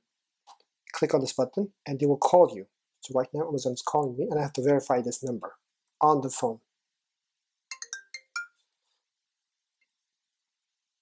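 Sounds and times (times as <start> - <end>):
mobile phone ringtone: 7.7 - 8.6.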